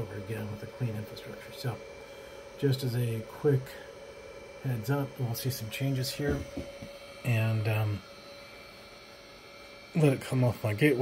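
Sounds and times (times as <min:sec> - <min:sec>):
cooling fans whirring: 0:00.0 - 0:11.0.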